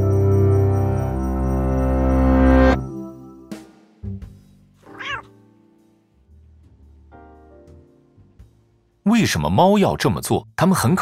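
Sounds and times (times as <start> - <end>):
soft background music: 0.0 - 11.0
cat meow: 4.8 - 5.4.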